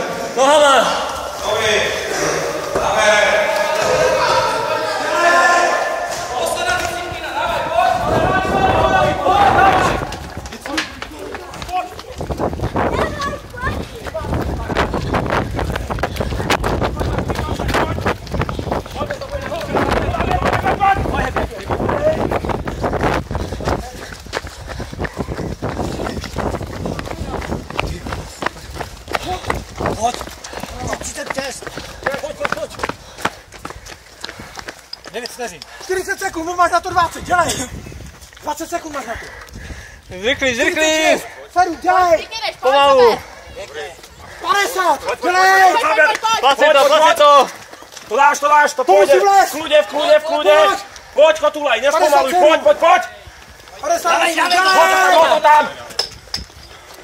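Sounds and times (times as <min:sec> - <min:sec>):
voices shouting encouragement: 0:00.0 - 0:33.0, 0:40.1 - 0:55.9
running footsteps on asphalt: 0:00.0 - 0:57.0.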